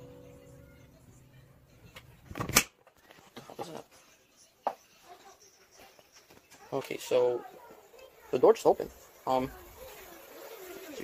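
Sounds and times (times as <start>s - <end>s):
digital piano chord: 0.0s - 0.9s.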